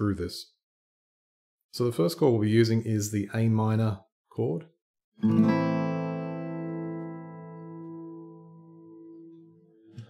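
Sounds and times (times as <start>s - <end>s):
acoustic guitar chord ringing: 5.2s - 10.0s.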